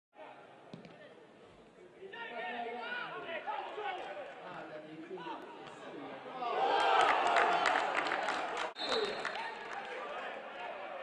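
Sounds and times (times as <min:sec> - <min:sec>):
faint crowd background: 0:00.2 - 0:11.0.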